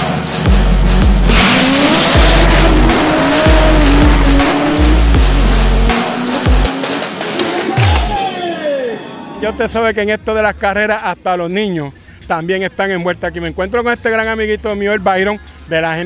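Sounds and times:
loud music with heavy bass: 0:00.0 - 0:09.6
car engine accelerating: 0:00.9 - 0:07.9.

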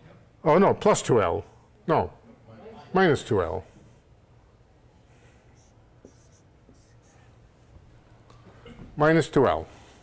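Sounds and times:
writing scratching on board: 0:06.0 - 0:07.3.

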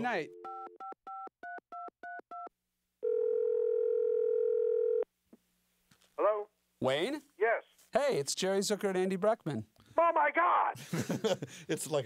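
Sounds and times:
telephone ringback tone: 0:00.3 - 0:05.0.

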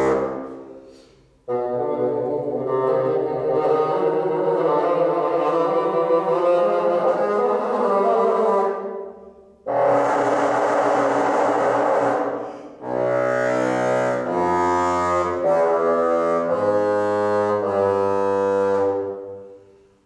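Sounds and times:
solo bassoon playing: 0:00.0 - 0:19.8.

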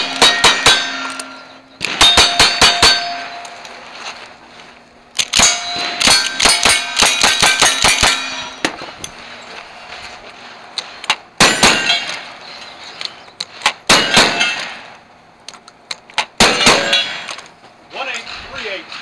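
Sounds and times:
rifle shots: 0:00.0 - 0:03.6, 0:05.2 - 0:09.4, 0:11.4 - 0:12.4, 0:13.6 - 0:15.0, 0:16.3 - 0:17.3
steel plate ringing: 0:00.0 - 0:03.7, 0:05.4 - 0:08.8, 0:11.4 - 0:12.5, 0:14.0 - 0:14.9, 0:16.5 - 0:17.3
steel targets clanging down: 0:00.0 - 0:03.8, 0:05.3 - 0:09.5, 0:11.4 - 0:14.9, 0:16.4 - 0:17.4
shotgun blasts: 0:11.4 - 0:12.3, 0:13.8 - 0:14.9, 0:16.4 - 0:17.3.

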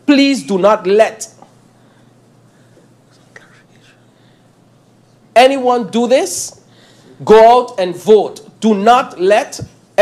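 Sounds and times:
faint breathy whispering: 0:03.1 - 0:04.2.

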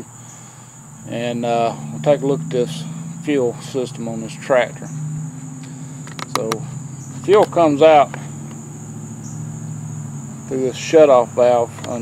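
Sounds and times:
insects chirping: 0:00.0 - 0:12.0
low steady hum: 0:00.0 - 0:12.0
light clicks: 0:05.6 - 0:06.6.

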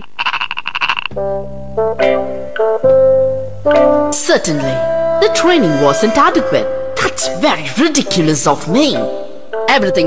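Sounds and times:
cartoon frog croak: 0:00.0 - 0:01.2
sustained keyboard chords: 0:01.1 - 0:10.0.

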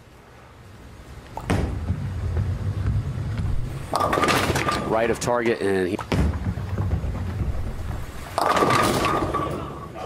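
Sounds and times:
bowling ball rolling on wooden lane: 0:01.4 - 0:09.9
bowling pins crashing: 0:03.4 - 0:09.9.

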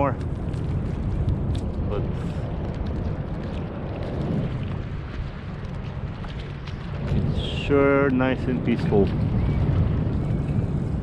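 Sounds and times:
sea water washing around hull: 0:00.0 - 0:11.0
wind buffeting microphone: 0:00.0 - 0:11.0.

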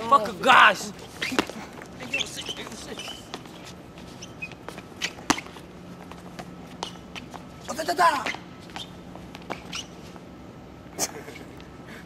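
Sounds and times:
skateboard squeak: 0:01.0 - 0:05.8, 0:06.7 - 0:10.2.

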